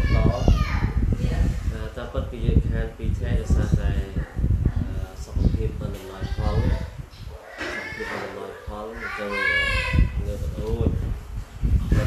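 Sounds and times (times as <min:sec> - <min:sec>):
man speaking: 0:01.7 - 0:04.2, 0:04.8 - 0:11.1.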